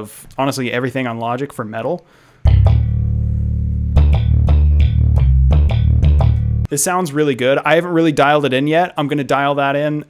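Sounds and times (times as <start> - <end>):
electric bass notes: 2.4 - 6.7.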